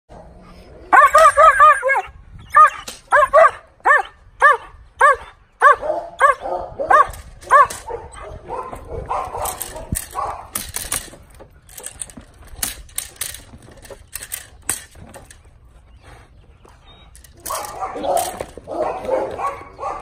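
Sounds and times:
dog barking: 0:02.6 - 0:10.5, 0:17.5 - 0:20.0.

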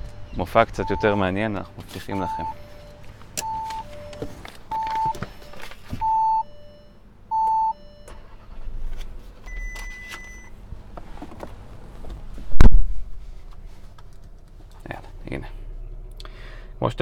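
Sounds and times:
two-note car warning chime: 0:00.0 - 0:08.5.

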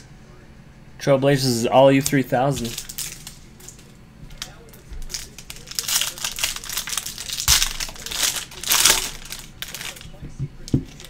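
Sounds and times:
foil wrapper tearing and crinkling: 0:02.6 - 0:10.2.

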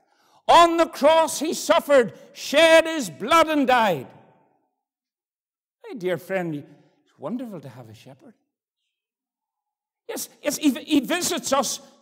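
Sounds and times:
man speaking: 0:00.5 - 0:04.2, 0:05.8 - 0:08.4, 0:10.1 - 0:12.0.

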